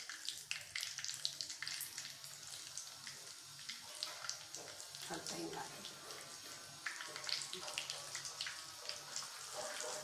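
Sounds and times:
hot oil sizzling with crackles: 0:00.0 - 0:10.0.

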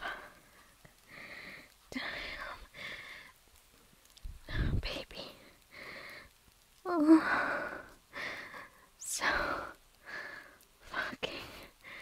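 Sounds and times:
woman whispering breathily: 0:01.6 - 0:02.8, 0:04.4 - 0:05.6, 0:09.0 - 0:09.8, 0:10.8 - 0:12.0.

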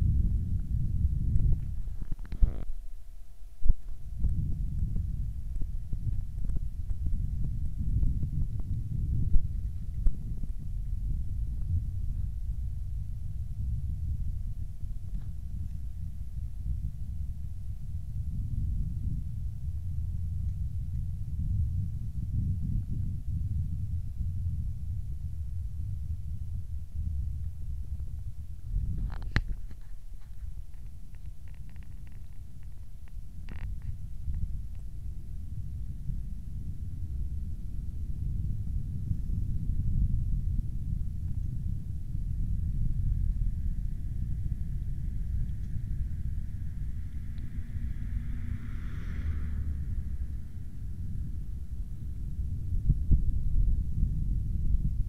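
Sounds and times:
faint high whine: 0:00.0 - 0:55.0
low uneven camera rumble: 0:00.0 - 0:55.0.

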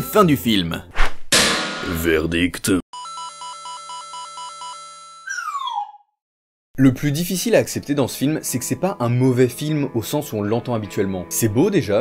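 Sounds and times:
descending whistle sound effect: 0:05.3 - 0:06.1.

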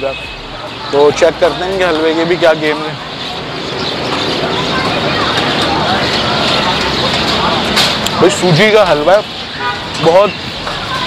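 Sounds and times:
street traffic: 0:00.0 - 0:11.0.

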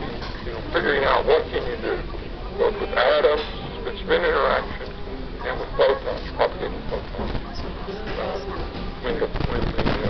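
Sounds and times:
indistinct background voices: 0:00.0 - 0:10.0
low hum of busy room: 0:00.0 - 0:10.0.

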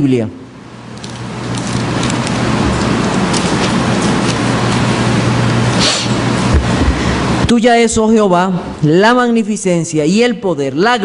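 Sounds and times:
low hum: 0:00.4 - 0:08.9.

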